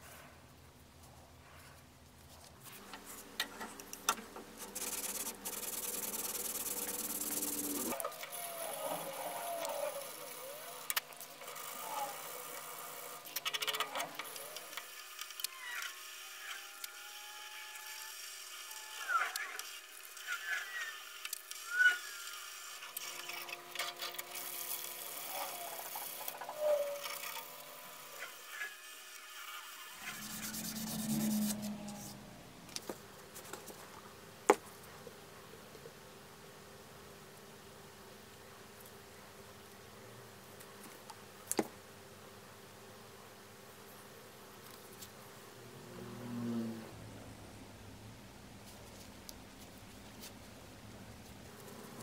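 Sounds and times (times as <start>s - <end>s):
faint squeaks and clicks: 18.8s - 24.3s, 25.2s - 28.7s
hand rubbing wooden handle: 30.0s - 32.4s.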